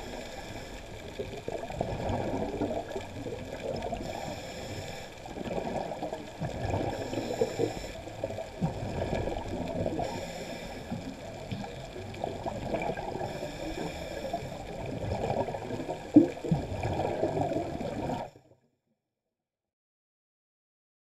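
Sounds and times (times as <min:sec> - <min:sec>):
underwater gurgling: 0:00.0 - 0:18.6.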